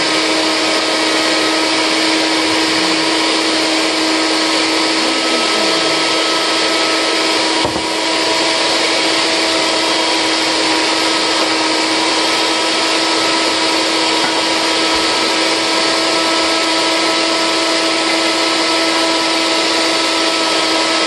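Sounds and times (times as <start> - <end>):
blender motor whining: 0.0 - 21.0.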